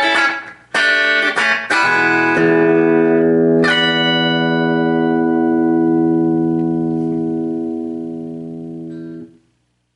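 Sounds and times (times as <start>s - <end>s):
electric guitar chord ringing: 0.0s - 9.4s.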